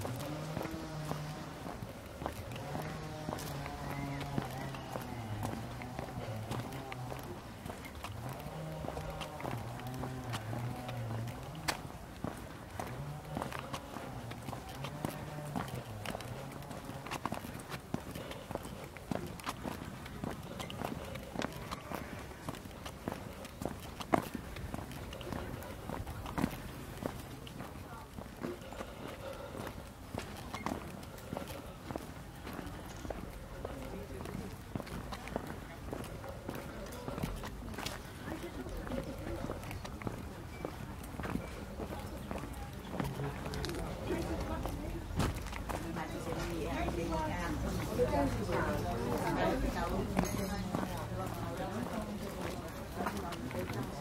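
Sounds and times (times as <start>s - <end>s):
footsteps on brick path: 0.0s - 54.0s
people talking in background: 0.0s - 54.0s.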